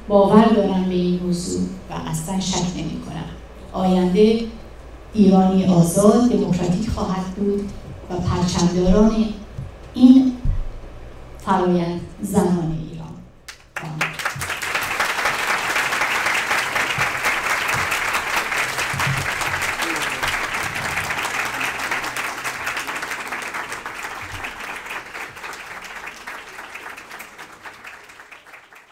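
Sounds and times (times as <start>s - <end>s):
audience applause: 13.8s - 28.9s.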